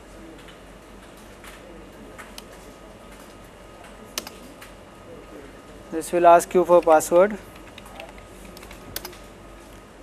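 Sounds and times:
keyboard keystrokes: 6.8 - 9.2.

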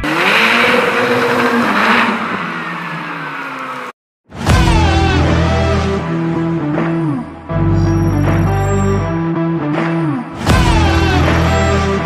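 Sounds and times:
car engine revving: 0.0 - 4.0.

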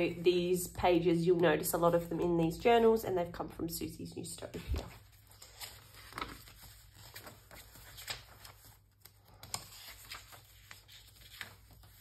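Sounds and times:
page flipping rustle: 4.6 - 12.0
soft brushing of paper: 4.6 - 12.0.

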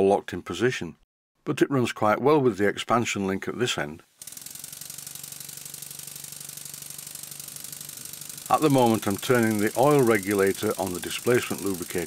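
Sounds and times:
steam engine running: 4.2 - 12.0.

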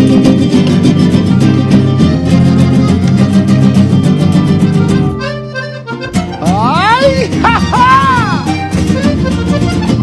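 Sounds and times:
accordion: 0.0 - 10.0
strummed guitars: 0.0 - 10.0.

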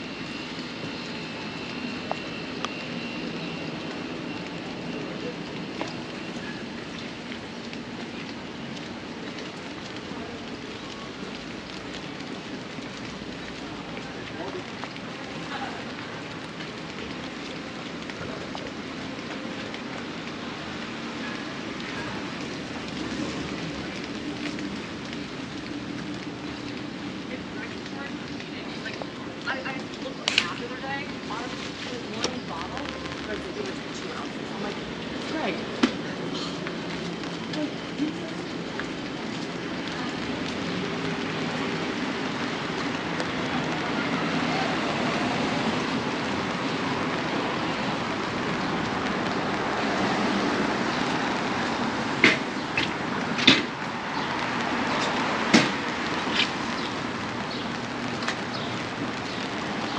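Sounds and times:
traffic on wet pavement: 0.0 - 59.9
passers-by voices: 0.5 - 53.0.

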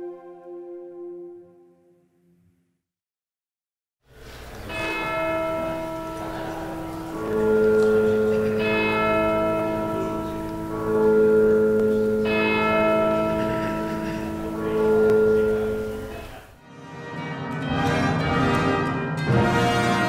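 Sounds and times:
church bells ringing: 4.4 - 20.0.

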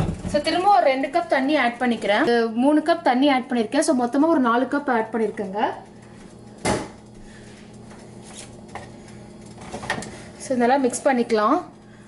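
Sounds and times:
low steady hum: 0.0 - 12.0
woman speaking: 0.3 - 5.9, 10.4 - 11.7.

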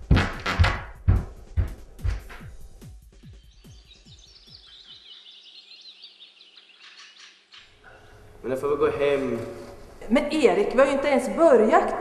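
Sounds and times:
music: 0.0 - 5.0
birds chirping: 3.2 - 9.4.

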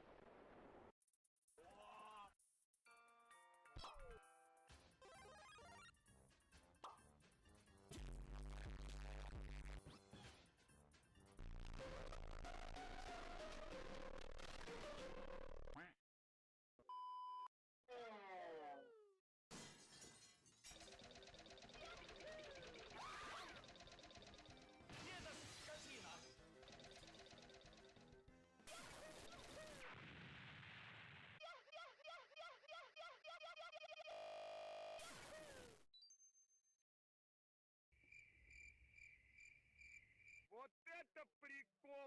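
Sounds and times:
glass shattering: 19.5 - 20.8
cartoon character voice: 21.8 - 23.6, 31.4 - 34.0
crickets chirping: 38.0 - 40.5.

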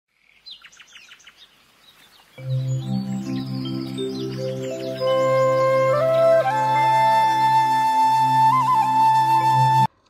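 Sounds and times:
birds chirping: 0.1 - 9.4
low droning music: 2.4 - 9.9.

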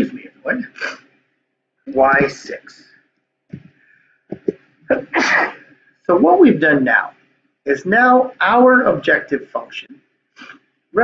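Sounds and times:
man sneezing: 5.0 - 5.7.

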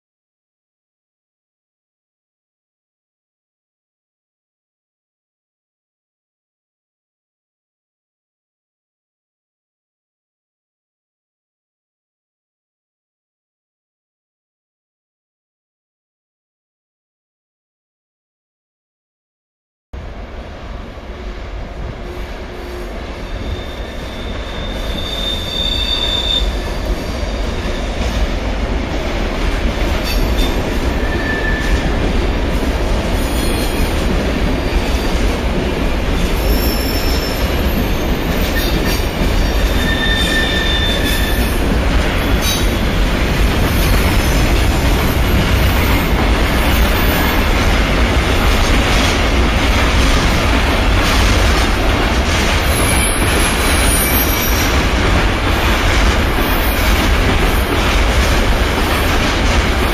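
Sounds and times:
train wheels rumbling on rail: 20.0 - 59.9
high-pitched wheel squeals: 23.3 - 26.9, 30.1 - 31.8, 36.4 - 38.8, 39.4 - 41.6, 52.8 - 54.7.

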